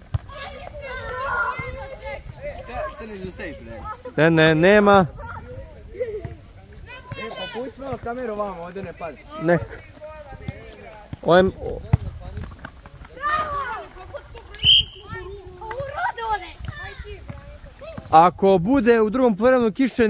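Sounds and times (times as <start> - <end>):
children calling and talking: 0.0 - 11.8, 12.9 - 18.6.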